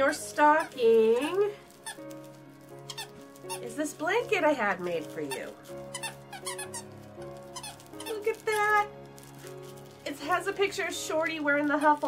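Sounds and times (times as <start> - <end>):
soft background music: 0.0 - 12.0
squeaky dog toy squeaking: 2.9 - 3.8, 5.2 - 8.9.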